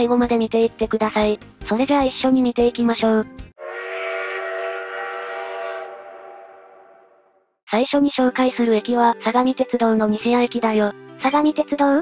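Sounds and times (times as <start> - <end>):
train horn blast: 3.6 - 7.3.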